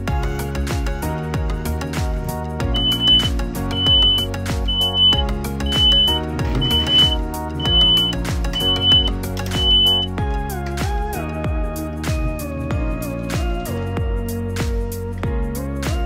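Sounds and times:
background music with steady beat: 0.0s - 16.0s
high-pitched reversing alarm beeps: 2.8s - 10.1s.

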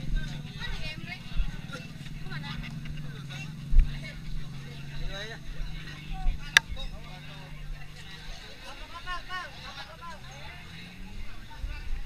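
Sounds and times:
crowd talking and calling: 0.0s - 12.0s
motor engine running: 0.0s - 12.0s.

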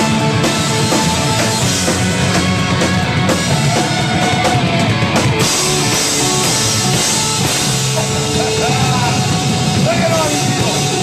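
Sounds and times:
bass guitar: 0.0s - 11.0s
drum kit with crashing cymbals: 0.0s - 11.0s
electric guitars: 0.0s - 11.0s.

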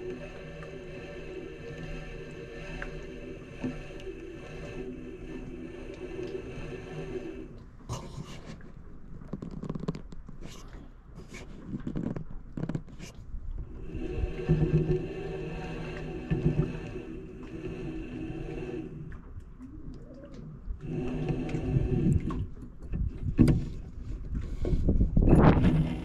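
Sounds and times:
fishing reel gear whirring: 0.0s - 7.6s.

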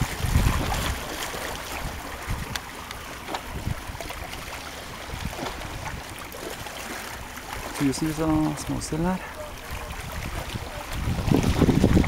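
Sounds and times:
light water splashes: 0.0s - 12.0s
small waves lapping shoreline: 0.0s - 12.0s.

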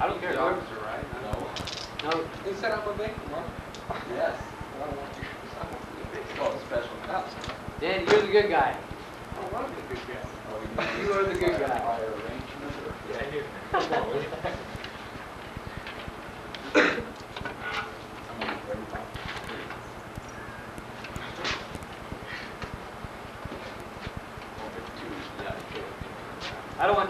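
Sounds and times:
low steady hum: 0.0s - 27.0s.

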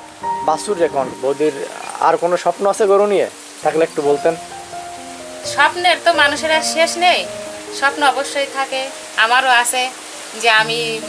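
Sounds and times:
person talking: 10.4s - 11.0s.

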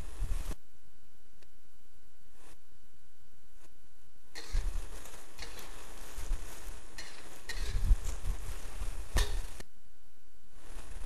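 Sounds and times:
metal spatula scraping a wok: 4.4s - 8.2s.

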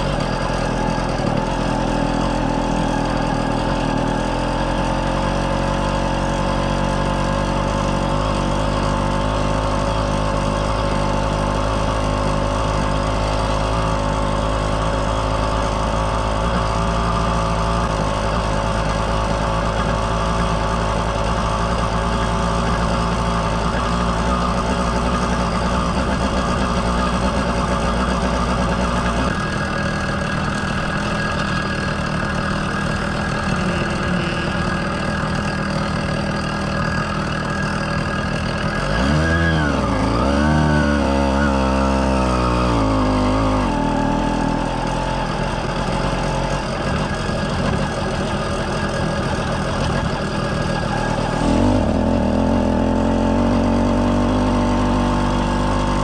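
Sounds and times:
two-stroke bicycle engine running: 0.0s - 56.0s.

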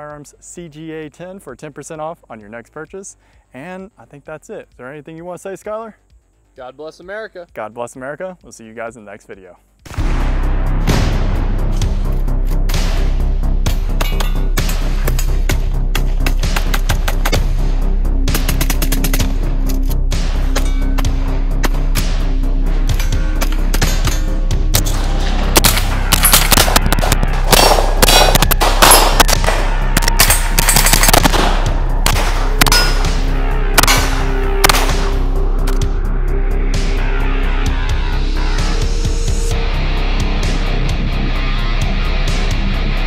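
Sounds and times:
background music: 0.0s - 43.0s
gunfire: 23.4s - 35.2s.

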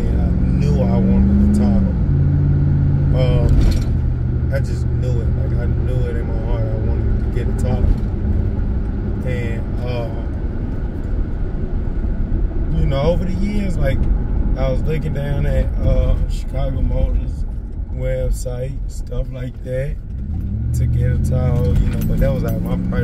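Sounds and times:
car engine drone: 0.0s - 23.0s
tyres on road: 0.0s - 23.0s.

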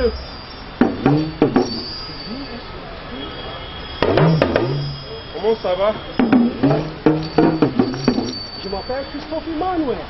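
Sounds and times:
talking drums pitch-bending tones: 0.0s - 9.7s
background hiss: 0.0s - 10.0s.

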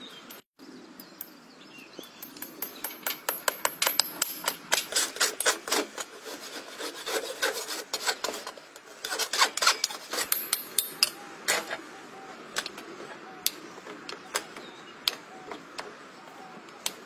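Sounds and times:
rasp filing a hoof: 4.0s - 11.7s.

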